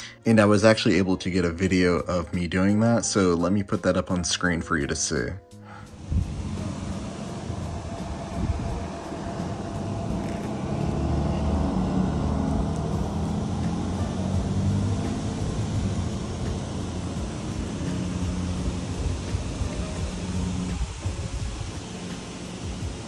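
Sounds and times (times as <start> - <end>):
faint hum: 5.7 - 23.0
low outdoor rumble: 5.7 - 23.0.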